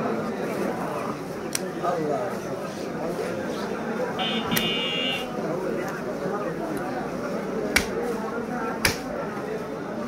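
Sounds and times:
people talking: 0.0s - 10.0s
cleaver chopping meat on wood block: 7.7s - 8.0s, 8.8s - 9.2s.

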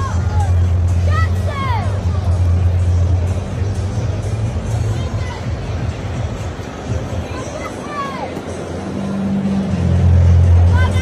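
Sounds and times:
music with deep bass line: 0.0s - 7.4s, 8.5s - 11.0s
crowd chatter: 0.0s - 11.0s.

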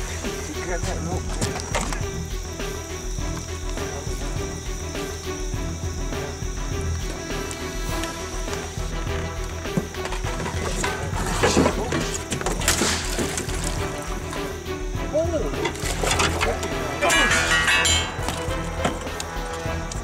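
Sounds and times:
background music: 0.0s - 20.0s
thrashing and splashing water: 10.3s - 14.5s, 15.6s - 18.8s
people shouting: 16.2s - 18.1s.

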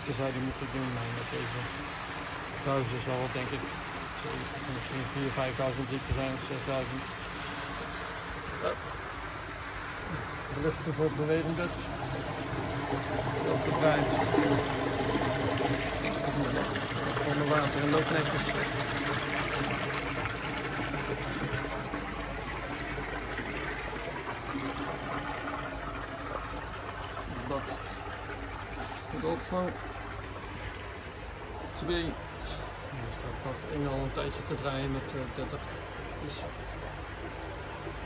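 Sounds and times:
water pouring from pipe into tank: 0.0s - 38.0s.

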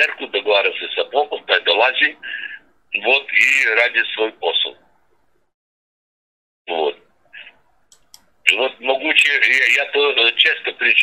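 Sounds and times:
man talking: 0.0s - 4.8s, 6.7s - 7.5s, 8.4s - 11.0s
faint clicks: 7.9s - 8.3s.

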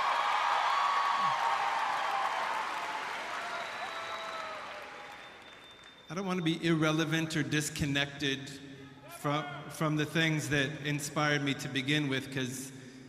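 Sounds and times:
audience applauding: 0.0s - 6.1s.

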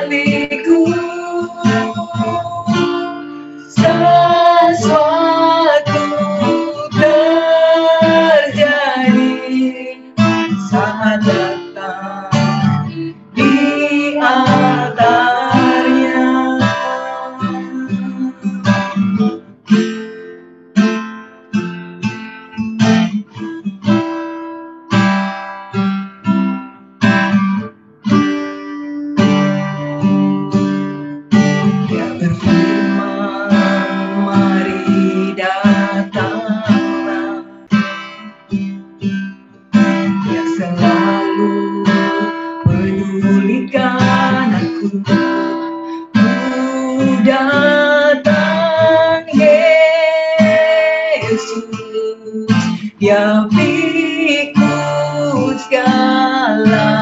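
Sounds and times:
woman singing into a microphone: 0.0s - 19.4s, 31.8s - 38.0s, 39.8s - 57.0s
acoustic guitar strumming chords: 0.0s - 57.0s.

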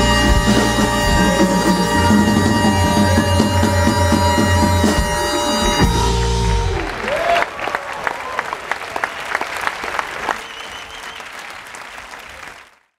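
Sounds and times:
audience applauding and cheering: 0.0s - 13.0s
rising shout: 5.9s - 9.2s.

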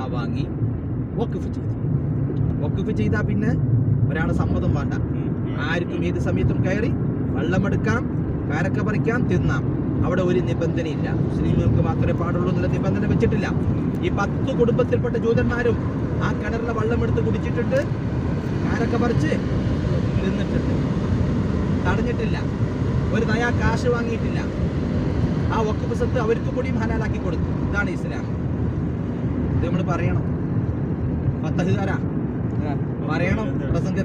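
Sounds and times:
car road and engine noise: 0.0s - 34.0s
person talking: 4.1s - 5.8s.

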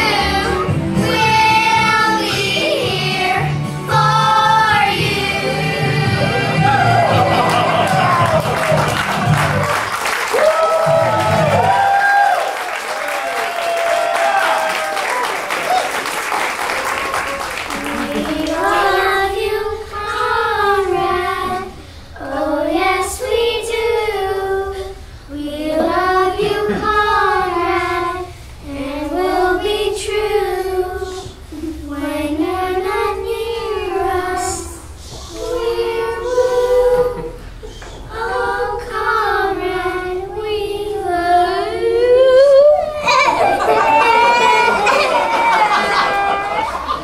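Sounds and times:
girls singing together: 0.0s - 8.6s, 17.4s - 47.0s.

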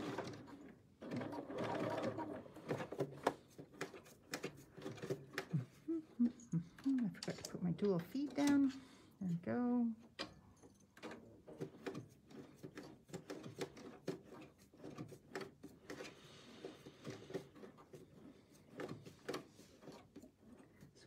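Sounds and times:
sewing machine ticking: 0.0s - 3.2s.

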